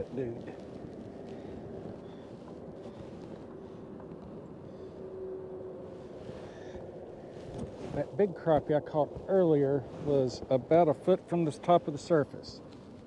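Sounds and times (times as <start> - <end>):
faint steady hum: 0.0 - 13.0
wind and water rumble: 0.0 - 13.0.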